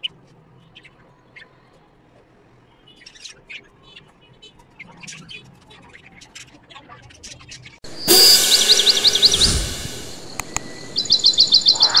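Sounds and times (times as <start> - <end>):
high bird-like chirps: 7.6 - 12.0
loud whoosh: 7.9 - 12.0.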